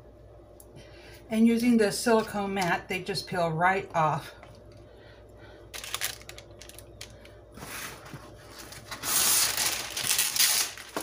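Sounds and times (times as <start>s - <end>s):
parchment paper rustling: 5.8s - 11.0s.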